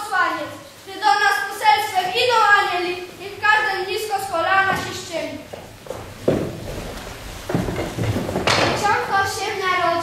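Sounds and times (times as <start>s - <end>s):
person speaking: 0.0s - 5.5s
children's footsteps on stage: 4.5s - 9.4s.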